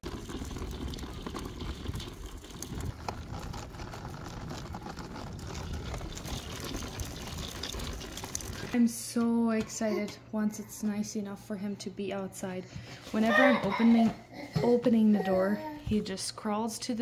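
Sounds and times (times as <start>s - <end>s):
stroller wheels rolling on asphalt: 0.0s - 8.8s.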